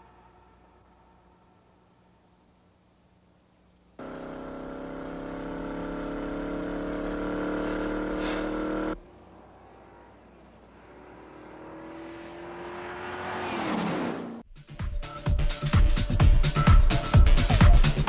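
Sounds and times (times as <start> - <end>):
car engine accelerating: 4.0 - 14.4
car passing by: 7.4 - 14.4.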